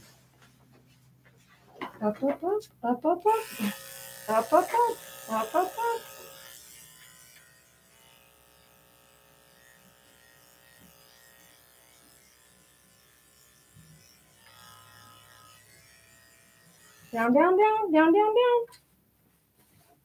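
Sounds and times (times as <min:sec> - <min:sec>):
electric clippers humming: 0:03.2 - 0:18.4.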